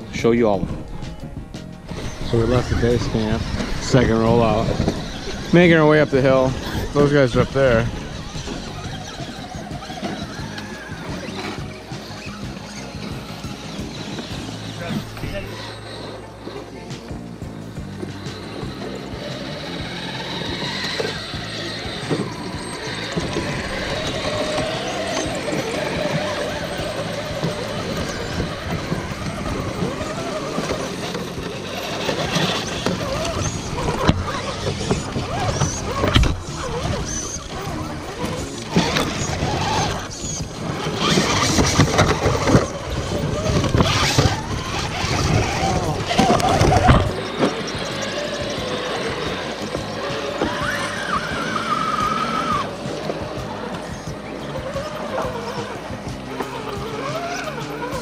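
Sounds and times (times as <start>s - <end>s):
electric motor and gears whining: 0.0s - 58.0s
tyres scraping on stone: 18.0s - 58.0s.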